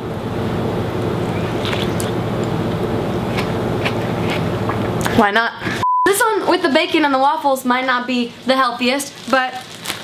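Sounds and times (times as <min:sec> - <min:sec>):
mechanical hum with rushing: 0:00.0 - 0:05.8.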